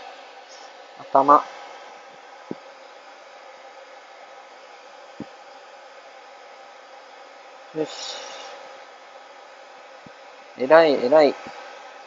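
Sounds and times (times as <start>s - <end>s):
dryer blowing through hose: 0.0s - 12.0s.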